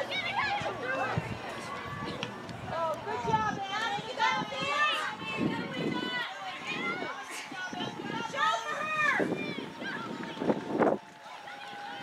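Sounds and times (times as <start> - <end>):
voices calling and talking: 0.0 - 12.0.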